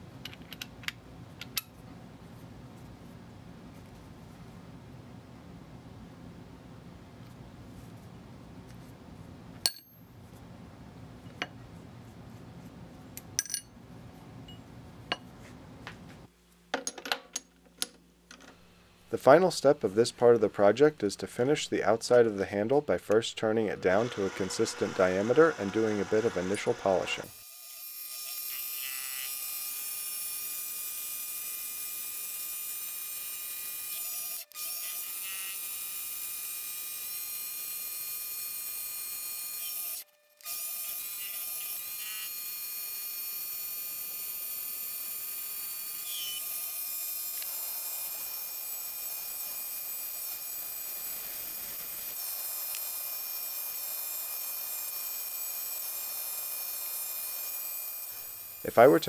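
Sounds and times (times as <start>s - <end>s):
lathe motor high whine: 23.7s - 27.4s.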